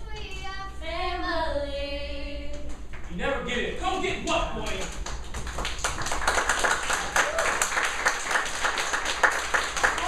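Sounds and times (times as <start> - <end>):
group hand clapping: 4.2 - 10.0.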